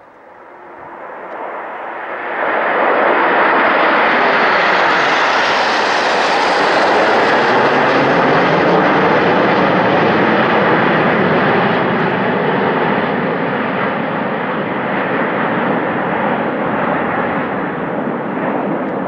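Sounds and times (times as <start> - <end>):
jets passing low overhead: 0.0 - 19.0.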